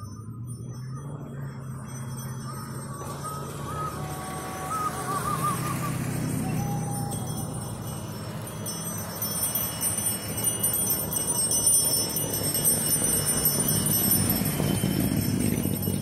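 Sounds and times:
car engines driving past: 0.0s - 16.0s
high metallic jingling: 0.0s - 16.0s
pickup truck approaching: 0.0s - 16.0s.

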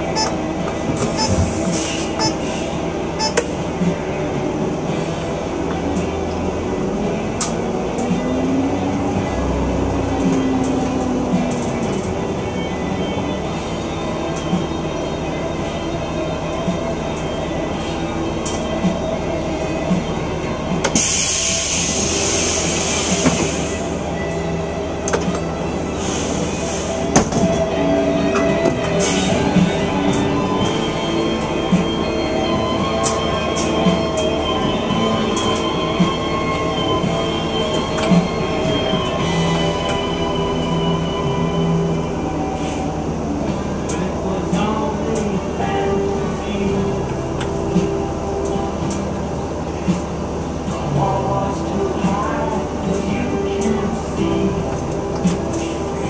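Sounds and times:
hiss: 21.0s - 23.9s.

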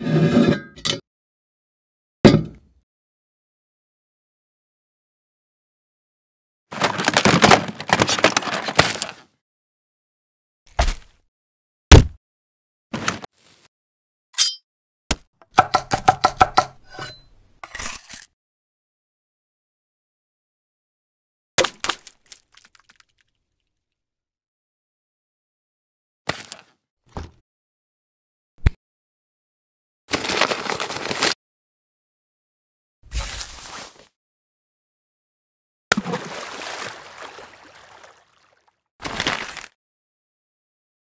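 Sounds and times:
knife scraping board: 0.0s - 0.8s, 16.7s - 18.3s
knife chopping on wooden board: 15.1s - 17.1s.

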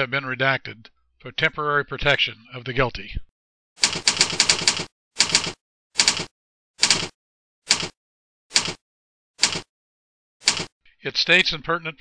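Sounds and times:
typewriter key clicks: 3.8s - 7.1s, 7.7s - 8.8s, 9.4s - 9.7s, 10.4s - 10.7s.

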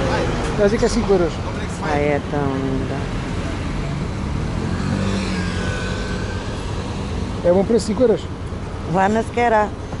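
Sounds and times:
urban traffic rumble: 0.0s - 10.0s
vehicle engine humming: 0.0s - 10.0s.

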